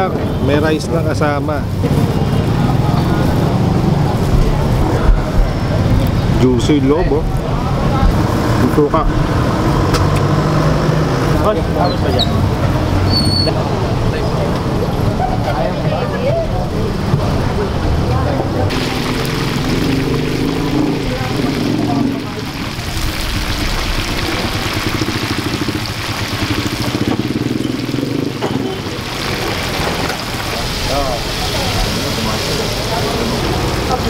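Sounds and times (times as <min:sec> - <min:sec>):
crowd voices: 0:00.0 - 0:34.0
oil sizzling in deep-frying: 0:18.7 - 0:34.0.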